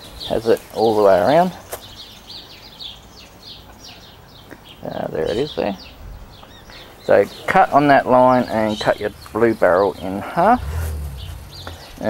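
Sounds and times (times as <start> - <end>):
bird chirping: 1.8 - 12.0.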